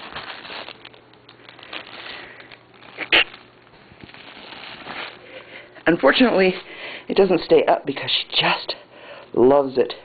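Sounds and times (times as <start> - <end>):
cat toy crackling and rustling: 0.0 - 6.6.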